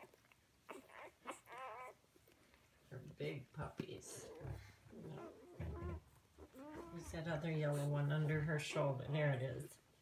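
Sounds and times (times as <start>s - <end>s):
puppies whimpering and squeaking: 0.0s - 2.7s, 4.1s - 9.2s.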